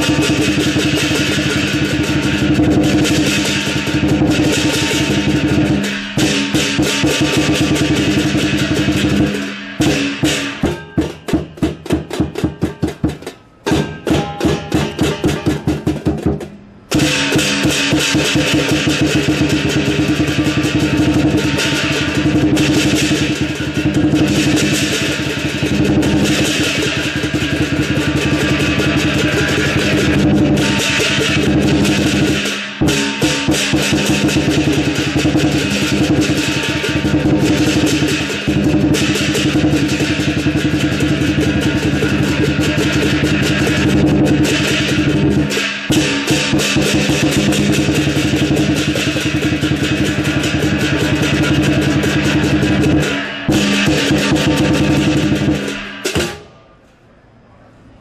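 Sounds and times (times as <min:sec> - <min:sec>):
drum beaten fast: 0:00.0 - 0:56.5
cymbals clashing: 0:00.0 - 0:56.8.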